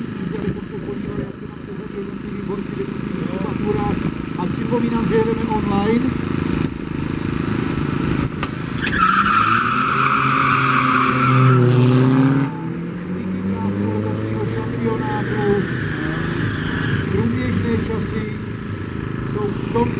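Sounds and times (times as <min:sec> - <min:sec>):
car engines revving hard: 0:00.0 - 0:19.9.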